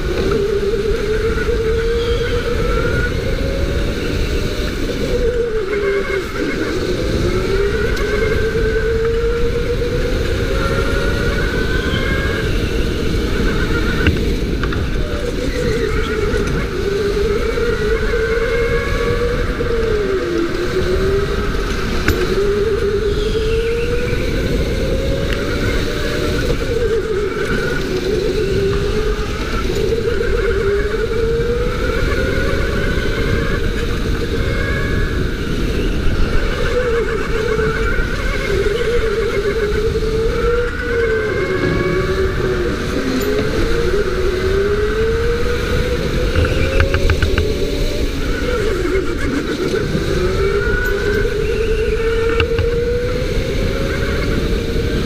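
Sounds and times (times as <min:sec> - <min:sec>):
go-kart motor whining: 0:00.0 - 0:55.0.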